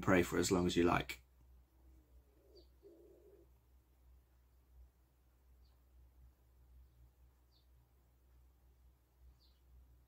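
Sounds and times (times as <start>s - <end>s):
pigeon cooing: 1.8s - 3.6s.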